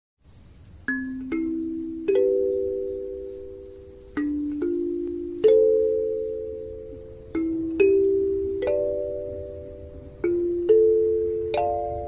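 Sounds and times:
kalimba notes plucked: 0:00.9 - 0:12.0.

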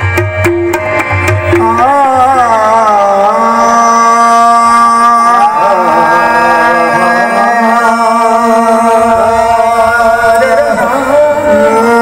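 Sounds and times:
harmonium drone: 0:00.0 - 0:12.0
man singing a long note: 0:01.5 - 0:12.0.

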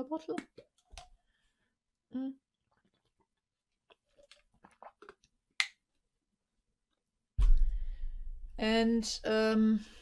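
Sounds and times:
swallow: 0:03.9 - 0:05.3.

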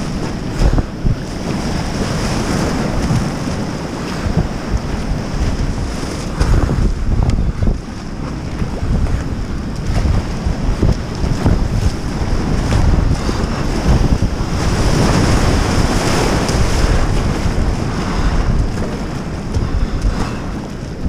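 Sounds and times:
rushing river rapids: 0:00.0 - 0:20.8
paddle splashes: 0:00.0 - 0:21.0
wind buffeting microphone: 0:00.0 - 0:21.0.

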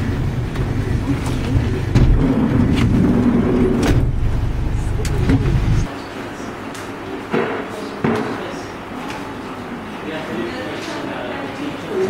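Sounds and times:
van engine rumble: 0:00.0 - 0:05.9.

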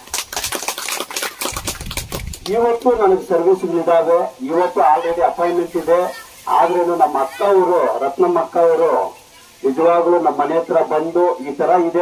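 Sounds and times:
man speaking into a microphone: 0:02.5 - 0:12.0.

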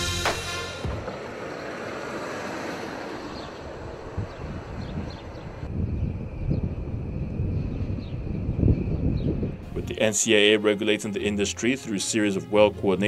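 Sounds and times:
jet engines running: 0:00.0 - 0:10.7
wind buffeting microphone: 0:03.3 - 0:10.2.

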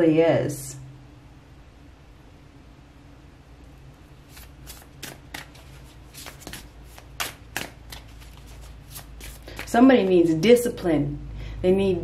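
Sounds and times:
cards being shuffled by hand: 0:04.2 - 0:10.1.

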